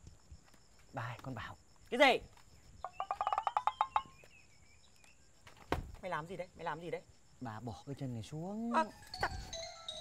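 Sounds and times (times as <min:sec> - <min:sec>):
fowl rattling gobble call: 0:02.8 - 0:04.1.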